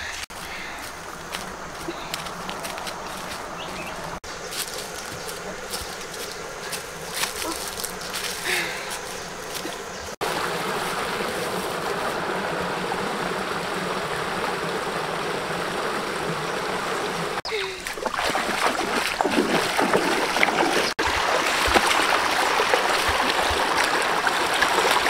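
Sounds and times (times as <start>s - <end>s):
rustling through dry brush: 0.0s - 12.4s
stream splashing over stones: 9.0s - 25.0s.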